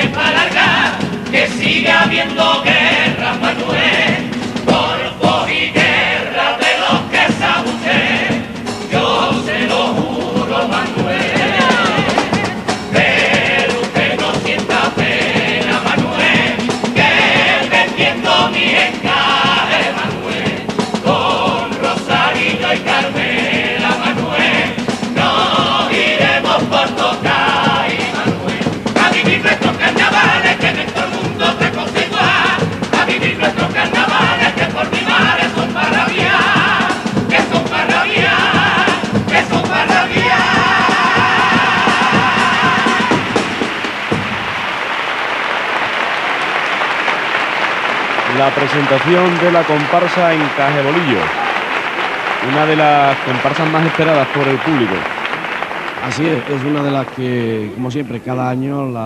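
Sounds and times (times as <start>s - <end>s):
male chorus singing in harmony: 0.0s - 44.2s
guitar accompaniment: 0.0s - 44.8s, 46.4s - 58.2s
audience applauding: 10.7s - 58.0s.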